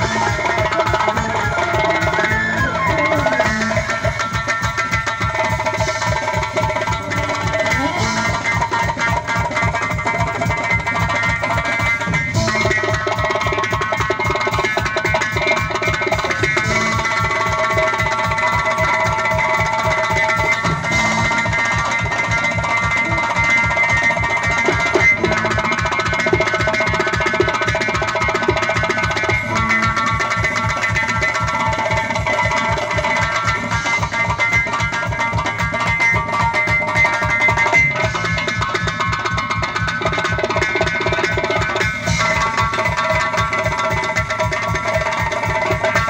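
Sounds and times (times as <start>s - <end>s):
band holding melodic notes: 0.0s - 46.0s
frame drums fast beat: 0.0s - 46.0s.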